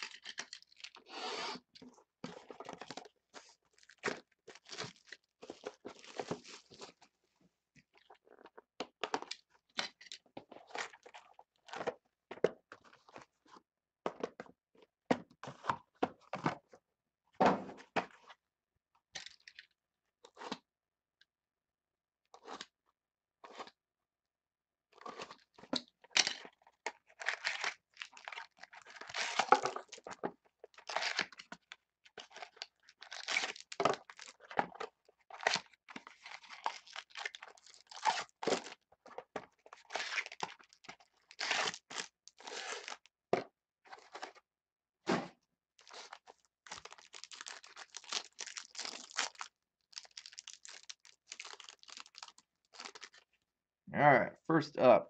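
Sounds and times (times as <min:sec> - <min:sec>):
foil wrappers crinkling and tearing: 0:00.0 - 0:01.1, 0:03.7 - 0:07.0, 0:27.1 - 0:30.1, 0:30.7 - 0:34.6, 0:35.3 - 0:38.8, 0:39.7 - 0:43.0, 0:45.8 - 0:53.2.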